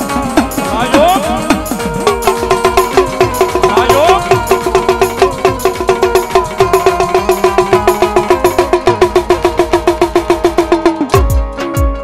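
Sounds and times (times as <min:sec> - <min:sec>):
tabla fast strokes: 0:00.0 - 0:11.8.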